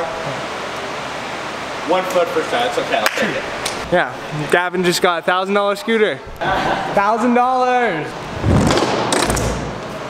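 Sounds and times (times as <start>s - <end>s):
steady rushing noise: 8.2s - 10.0s.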